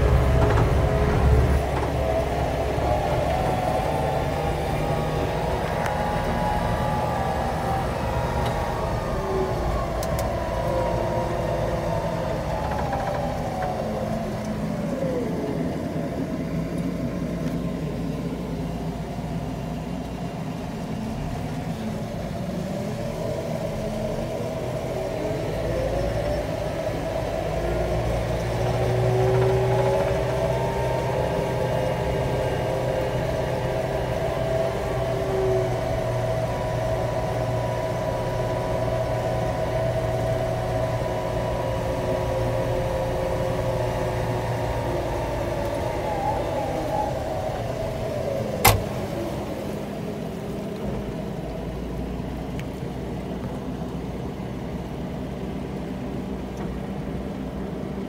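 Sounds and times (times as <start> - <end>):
diesel engine from inside cab: 0.0 - 58.0.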